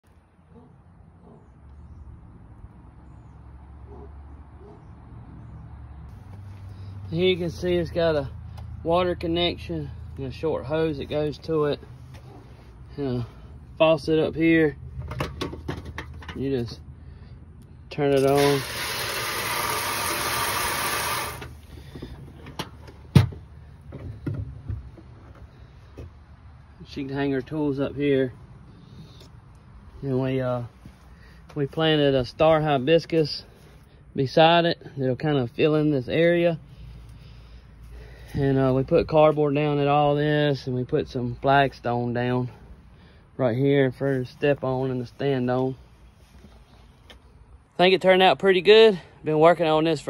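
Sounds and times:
hose water spraying into steel sink: 18.2 - 21.5.

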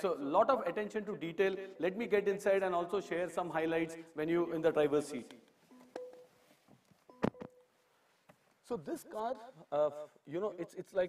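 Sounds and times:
faint beep tone: 5.7 - 6.3, 7.1 - 7.7.

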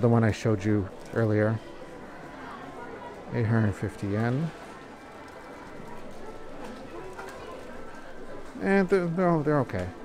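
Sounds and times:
shop background noise: 0.0 - 10.0.

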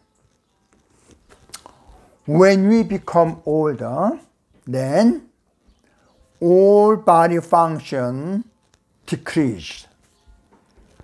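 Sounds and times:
mouth clicks and lip smacks: 1.3 - 2.0.

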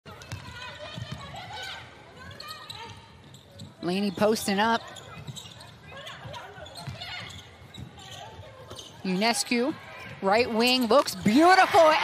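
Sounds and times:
murmur of arena crowd: 0.0 - 12.0
players' voices: 0.1 - 12.0.

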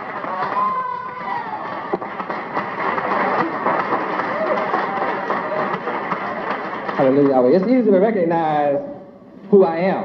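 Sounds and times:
audience clapping: 0.0 - 8.6.

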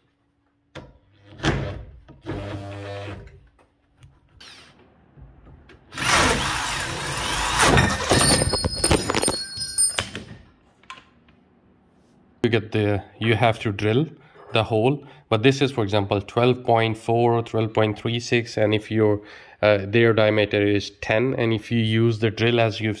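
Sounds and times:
electric drill drilling metal: 6.0 - 8.3.

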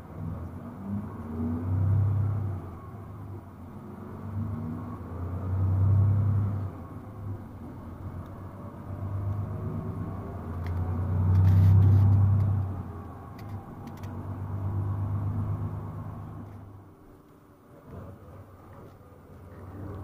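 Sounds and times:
bus engine rumble and road noise: 0.0 - 20.0.

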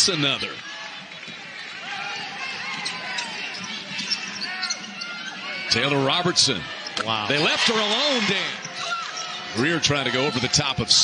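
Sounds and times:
crowd murmur and voices: 0.0 - 11.0.

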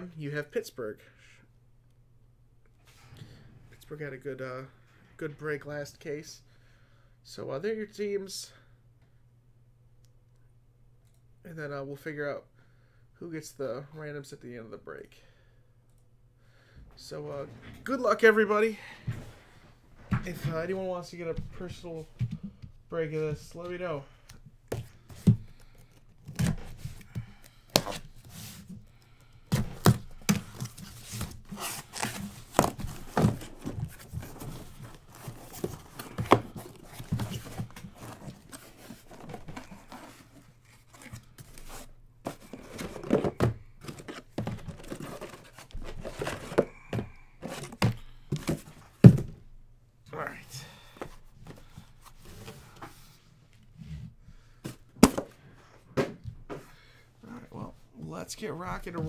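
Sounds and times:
cardboard tearing and rustling: 29.6 - 46.7
boxes thunking down: 42.3 - 49.4.

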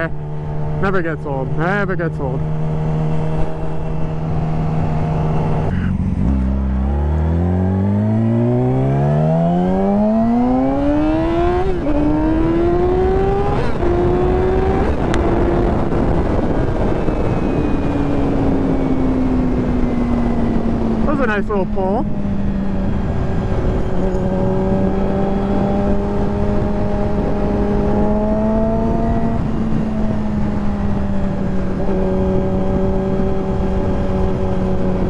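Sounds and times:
motorcycle engine accelerating: 0.0 - 35.0
wind rush: 2.4 - 35.0.

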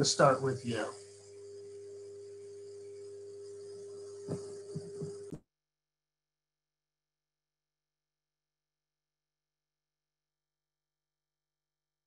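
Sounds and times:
electrical hum: 0.0 - 5.4
steady tone: 0.0 - 5.4.

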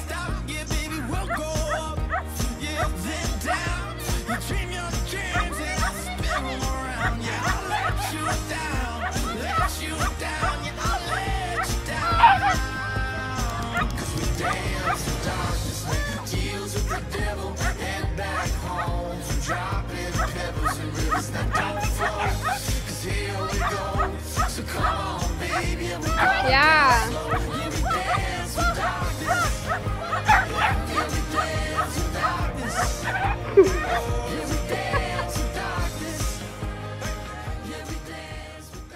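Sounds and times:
pop song with steady beat: 0.0 - 38.9
small dog barking: 9.0 - 12.6, 26.2 - 33.9.

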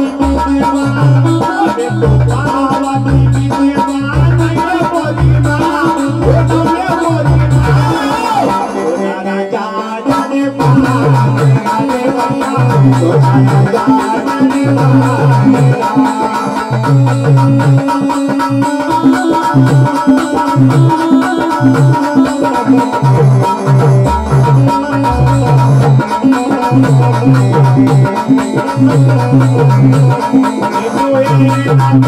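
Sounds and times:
hand drum rhythmic beat: 0.0 - 9.0, 10.1 - 32.0
electronic keyboard melody: 0.0 - 32.0
man singing: 0.0 - 32.0.

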